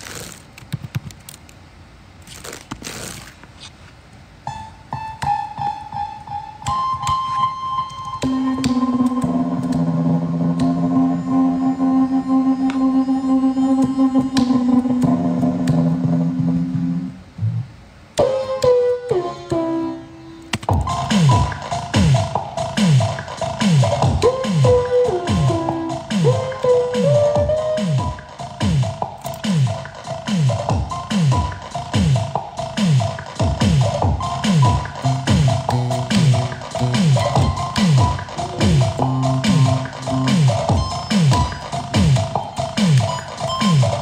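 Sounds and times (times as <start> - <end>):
synthesizer chords and bass: 4.5 - 44.0
pitch-bent synth tones: 4.9 - 17.2, 34.2 - 44.0.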